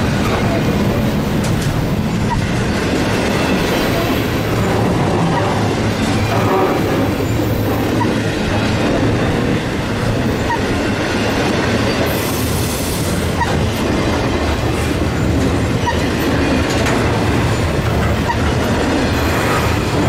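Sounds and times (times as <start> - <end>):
freight train wheels rumbling on rail: 0.0 - 20.0.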